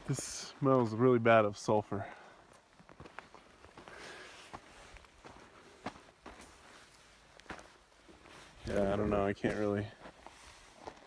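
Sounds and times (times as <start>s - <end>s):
footsteps crunching: 0.0s - 11.0s.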